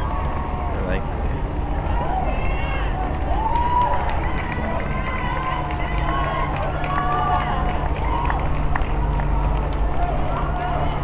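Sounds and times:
steady low rumble: 0:00.0 - 0:11.0
runners' footsteps on asphalt: 0:01.7 - 0:11.0
spectators cheering: 0:01.7 - 0:11.0.

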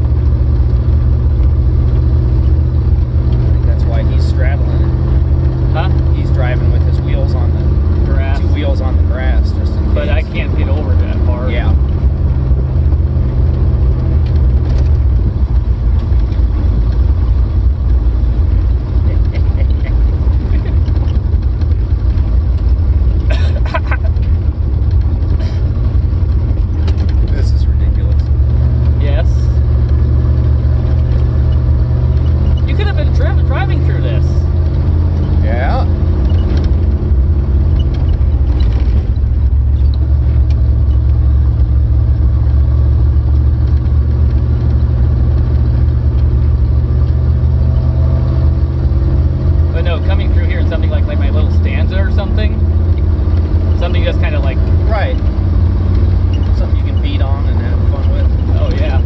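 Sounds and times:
car engine rumble: 0:00.0 - 0:59.0
voices: 0:03.6 - 0:05.0, 0:05.7 - 0:11.9, 0:27.1 - 0:29.7, 0:32.3 - 0:34.6, 0:35.4 - 0:36.0, 0:49.7 - 0:52.7, 0:53.8 - 0:55.3, 0:56.4 - 0:59.0.

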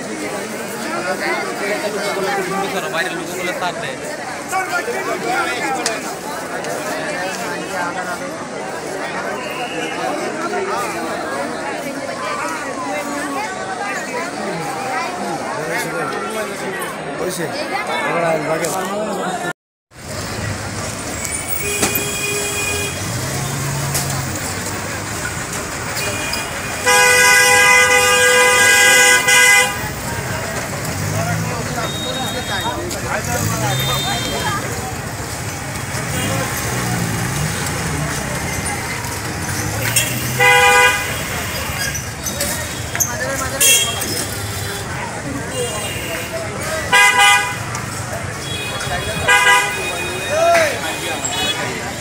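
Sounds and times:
busy street noise: 0:00.0 - 0:52.0
people's voices: 0:00.0 - 0:52.0
vehicle horn blast: 0:26.0 - 0:29.8, 0:39.9 - 0:41.4, 0:46.9 - 0:47.7, 0:48.4 - 0:51.6.

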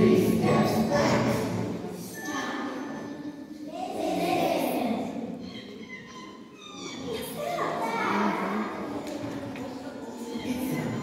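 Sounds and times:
children's voices in a gym: 0:00.0 - 0:11.0.

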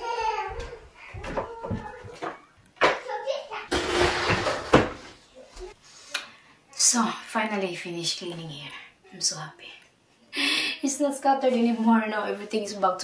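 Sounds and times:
child babbling: 0:00.0 - 0:02.3.

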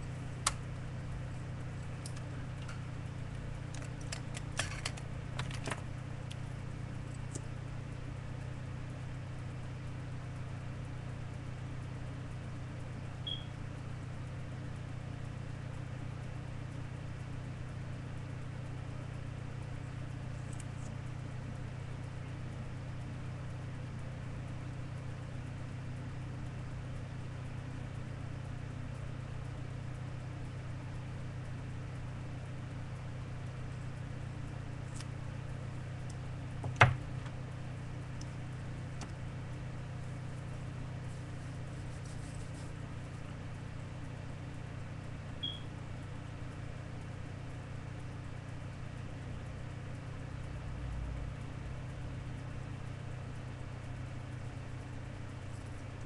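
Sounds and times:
steady low hum: 0:00.0 - 0:56.0
faint high chirp: 0:13.2 - 0:13.6, 0:45.4 - 0:45.7.

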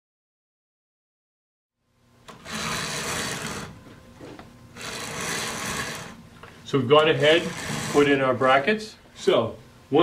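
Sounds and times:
rapid rasping mechanical rattle: 0:02.3 - 0:03.8, 0:04.8 - 0:06.2, 0:07.2 - 0:08.2.

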